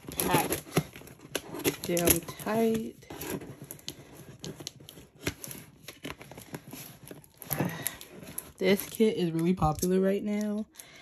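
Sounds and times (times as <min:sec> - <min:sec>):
scissors cutting cardboard: 0:00.0 - 0:08.8
cardboard box crinkling: 0:00.0 - 0:09.6.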